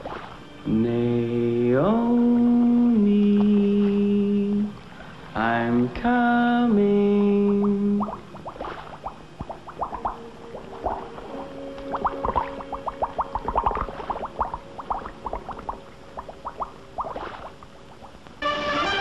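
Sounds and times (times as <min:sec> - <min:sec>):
comic bubbling plinks and pops: 0:07.3 - 0:18.2.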